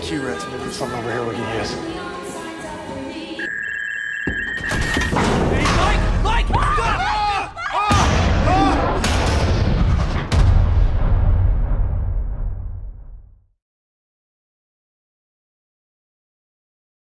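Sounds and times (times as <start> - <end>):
high electronic tone: 3.4 - 5.2
people screaming and shouting: 5.5 - 9.1
crash: 7.9 - 13.4
loud booming hits: 7.9 - 13.4.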